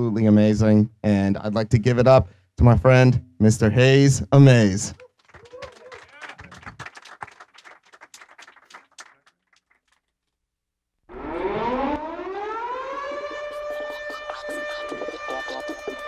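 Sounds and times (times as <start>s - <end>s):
audience applause: 5.0s - 10.0s.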